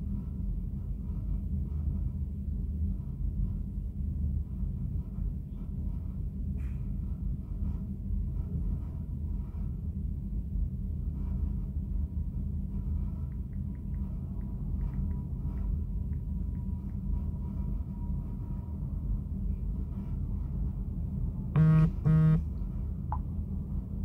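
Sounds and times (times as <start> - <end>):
steady low hum: 0.0 - 24.0
phone buzzing: 21.6 - 22.4.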